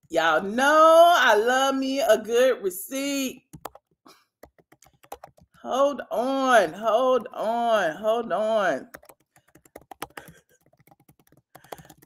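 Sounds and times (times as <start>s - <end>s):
typing on computer keyboard: 3.5s - 5.6s, 8.9s - 12.0s.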